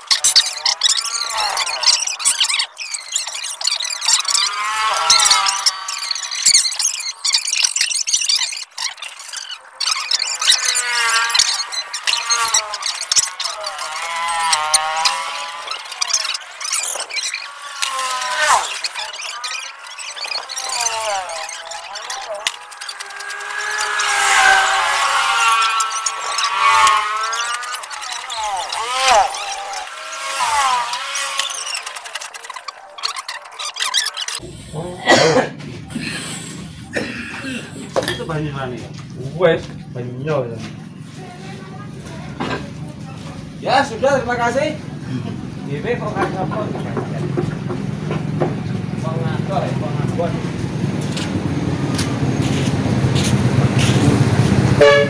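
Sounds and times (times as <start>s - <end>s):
steel drill pipe squealing: 0.0s - 34.4s.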